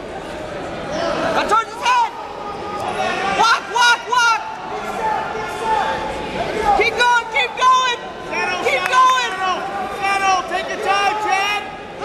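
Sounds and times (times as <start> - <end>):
people shouting in a hall: 0.0 - 12.0.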